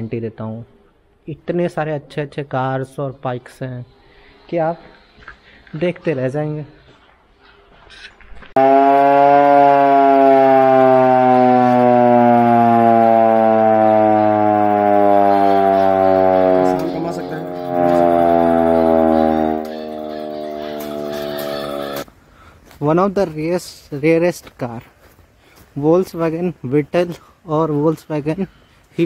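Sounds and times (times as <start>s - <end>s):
hand-cranked siren wailing: 8.6s - 22.1s.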